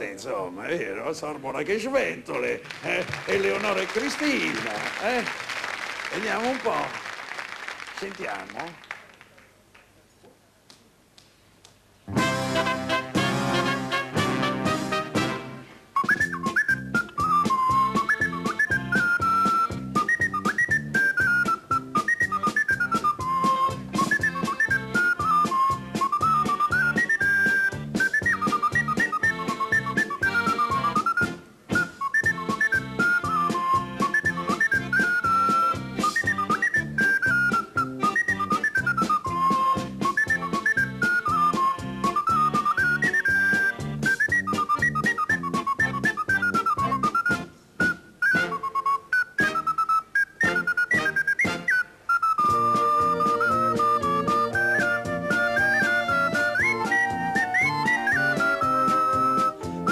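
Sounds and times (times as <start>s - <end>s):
band accompaniment: 2.2s - 7.1s, 12.0s - 51.8s, 52.4s - 59.9s
ocarina playing polka: 2.3s - 8.7s, 12.0s - 59.9s.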